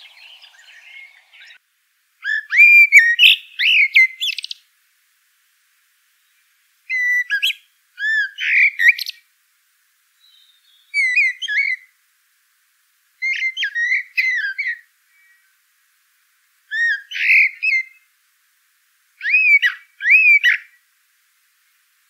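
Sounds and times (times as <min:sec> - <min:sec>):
songbird singing whistled notes: 0:00.0 - 0:01.6, 0:02.2 - 0:04.7, 0:06.2 - 0:09.2, 0:10.2 - 0:12.0, 0:13.2 - 0:15.6, 0:16.7 - 0:18.1, 0:19.2 - 0:20.8.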